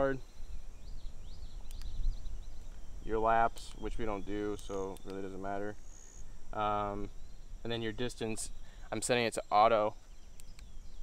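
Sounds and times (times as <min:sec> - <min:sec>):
faint bird chirps: 0:00.0 - 0:11.0
high insect trill: 0:00.0 - 0:11.0
faint clicks: 0:01.6 - 0:02.0, 0:03.5 - 0:05.3, 0:10.0 - 0:10.7.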